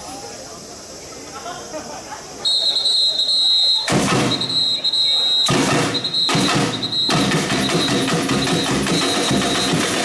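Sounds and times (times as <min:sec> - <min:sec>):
drums: 0:03.8 - 0:10.0.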